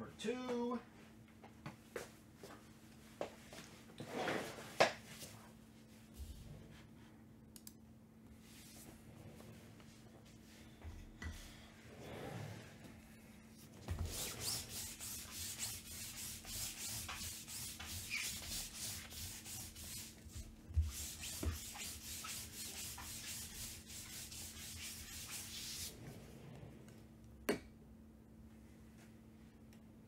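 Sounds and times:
rapid rubbing strokes on mat: 13.6 - 26.3.

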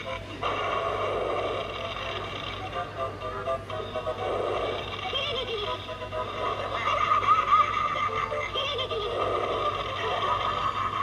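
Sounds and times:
music from small speaker: 1.6 - 11.0.

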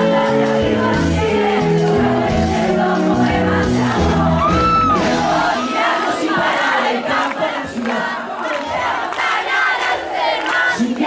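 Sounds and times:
band music: 0.0 - 7.0
crowd cheering and screaming: 2.6 - 7.2.

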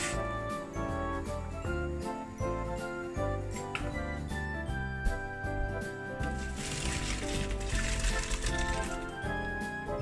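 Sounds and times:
background music: 0.0 - 10.0
water poured into colander: 6.3 - 9.1.

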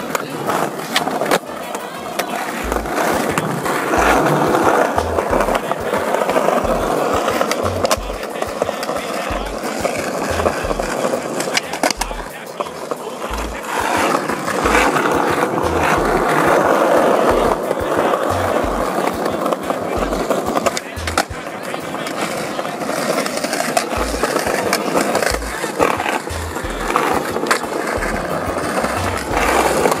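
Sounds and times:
skateboard wheels rolling on asphalt: 0.0 - 30.0.

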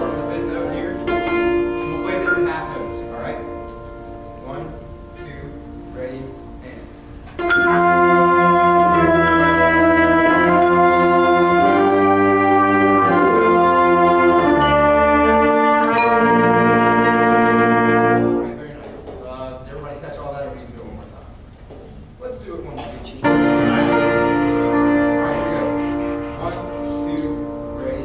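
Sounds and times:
brass and woodwind band sustained notes: 0.0 - 18.8, 23.2 - 28.0.

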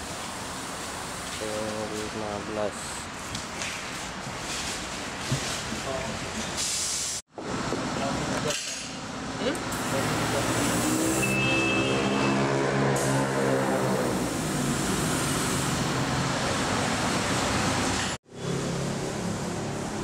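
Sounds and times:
road traffic noise: 0.0 - 20.0
vehicle engine passing close: 9.8 - 20.0.

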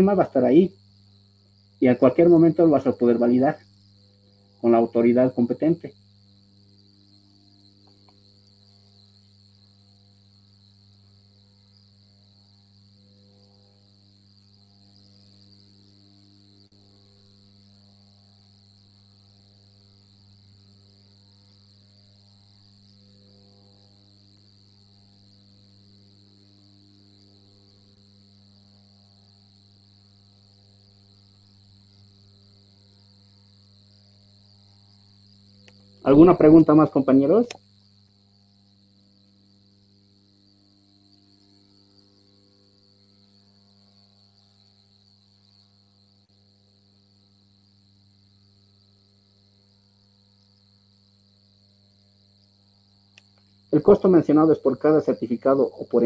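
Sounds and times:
high-pitched whine: 36.0 - 37.6.

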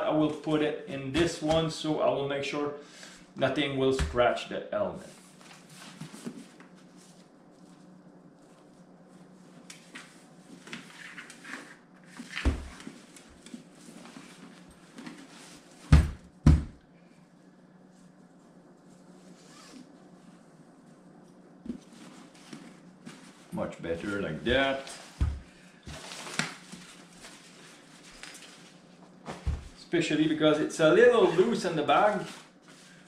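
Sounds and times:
low steady hum: 0.0 - 33.0.

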